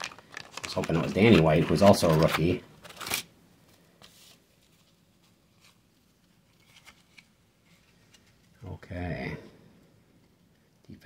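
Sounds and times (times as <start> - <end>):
trading cards clicking and rustling: 0.0 - 3.3.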